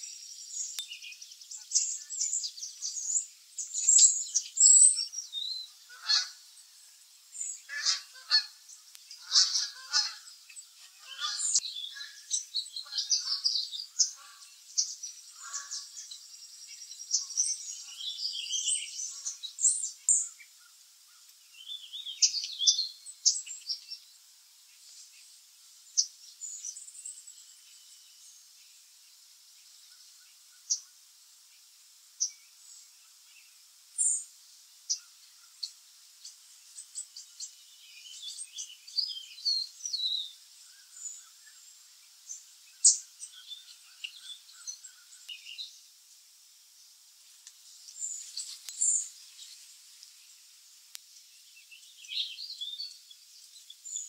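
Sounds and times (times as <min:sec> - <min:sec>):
small birds chirping: 0:00.0 - 0:54.0.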